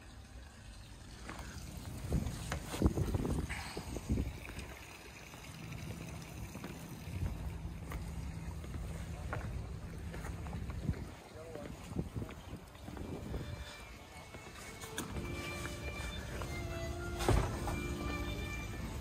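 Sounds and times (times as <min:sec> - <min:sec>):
wind rumble on microphone: 0:01.9 - 0:04.7, 0:10.4 - 0:11.2, 0:11.8 - 0:13.7.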